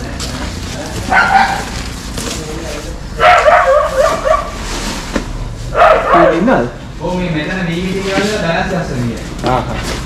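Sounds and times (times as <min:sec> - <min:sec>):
animal wavering calls: 0:03.2 - 0:04.6.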